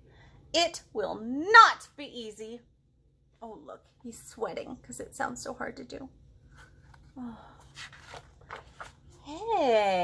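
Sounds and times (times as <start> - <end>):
book page turning: 6.5 - 9.2.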